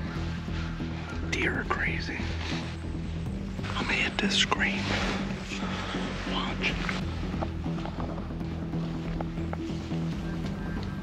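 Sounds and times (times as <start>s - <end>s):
low background music melody: 0.0s - 11.0s.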